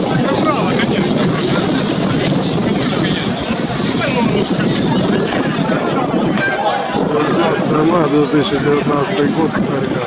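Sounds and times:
bicycles rolling and rattling: 0.0s - 10.0s
riders chattering: 0.0s - 10.0s.

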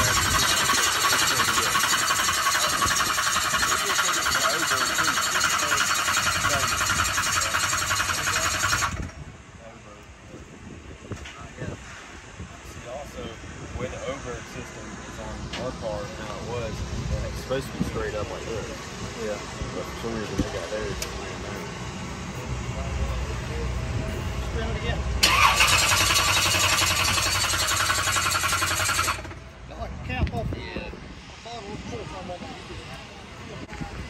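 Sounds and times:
loud harsh mechanical noise: 0.0s - 9.4s, 17.5s - 29.8s
faint voices: 0.0s - 34.0s
low engine rumble: 0.0s - 34.0s.

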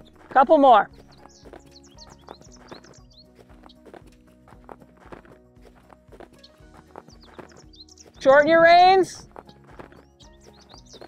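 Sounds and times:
faint background music: 0.0s - 11.0s
horse hoofbeats on sand: 0.0s - 11.0s.

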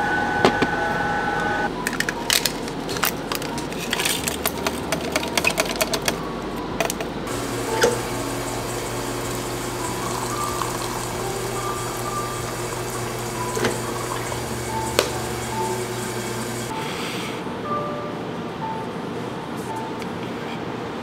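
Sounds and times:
tea bag rustling in pitcher: 2.0s - 6.1s
low hum: 6.2s - 16.7s
water pouring into pitcher: 7.3s - 16.7s.

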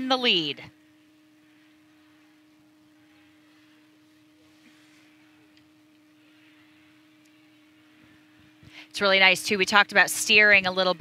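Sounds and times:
low electrical tone: 0.0s - 11.0s.

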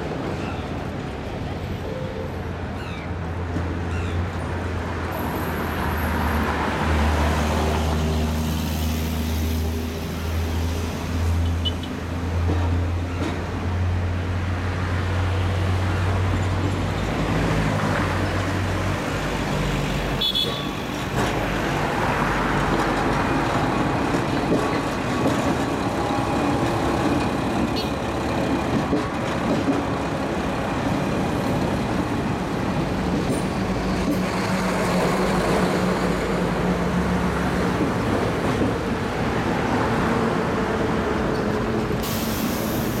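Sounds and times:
diesel railcar engine passing: 0.0s - 43.0s
road traffic: 0.0s - 43.0s.

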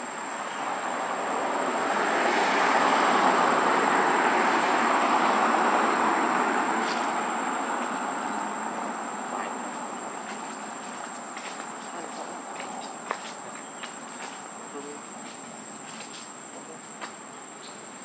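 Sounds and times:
broad rushing noise: 0.0s - 17.2s
high insect tone: 0.0s - 18.0s.

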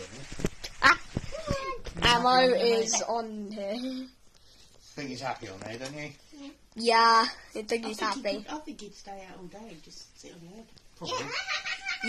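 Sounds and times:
person speaking: 1.4s - 4.1s, 7.6s - 8.7s
person laughing: 11.0s - 12.0s.

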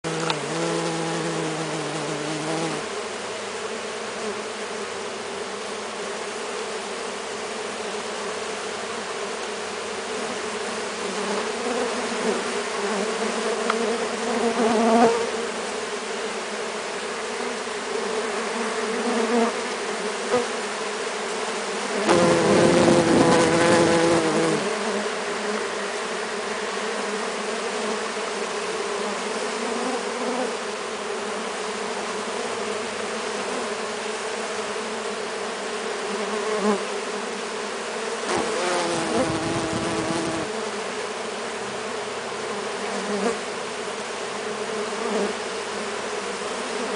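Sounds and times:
bees buzzing: 0.0s - 46.9s.

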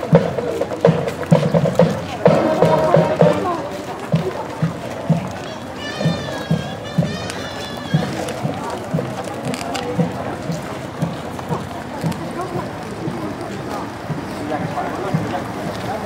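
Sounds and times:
crowd chattering: 0.0s - 16.0s
low drum beat: 0.0s - 16.0s.

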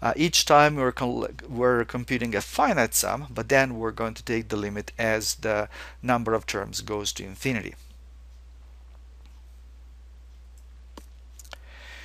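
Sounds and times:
low electrical hum: 0.0s - 12.0s
soft breath-like hiss: 5.6s - 6.0s, 11.5s - 12.0s.

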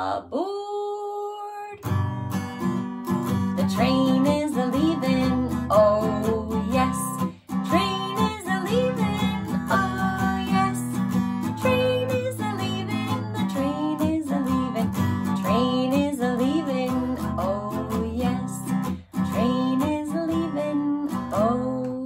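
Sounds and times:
woman singing: 0.0s - 1.9s, 3.3s - 22.0s
strummed acoustic guitar: 1.8s - 22.0s.

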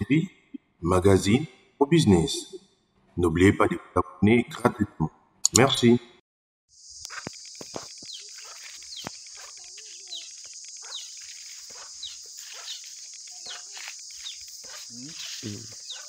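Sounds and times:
birds chirping: 6.7s - 16.0s
high-pitched hiss: 6.7s - 16.0s.

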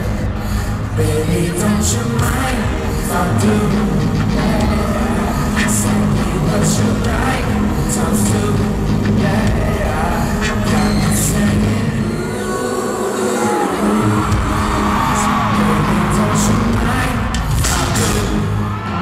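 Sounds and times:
crowd whooping and cheering: 9.8s - 19.0s.

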